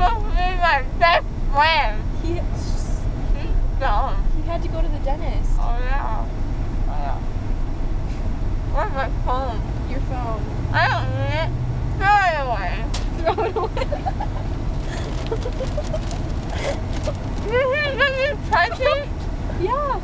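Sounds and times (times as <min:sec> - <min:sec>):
car cabin road rumble: 0:00.0 - 0:20.0.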